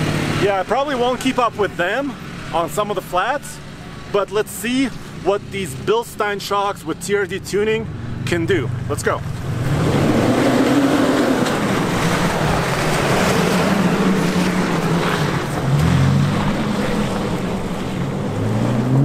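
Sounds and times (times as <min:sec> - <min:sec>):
truck engine climbing: 0:00.0 - 0:19.0
tyre and trail noise: 0:00.0 - 0:19.0.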